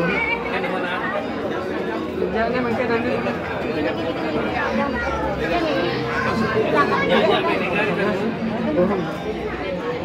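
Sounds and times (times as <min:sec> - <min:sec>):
overlapping conversational chatter: 0:00.0 - 0:10.0.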